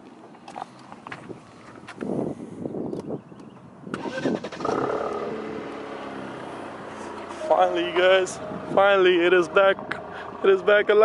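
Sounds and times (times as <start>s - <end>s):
car engine cranking: 3.9s - 8.9s
car engine idling: 4.0s - 11.0s.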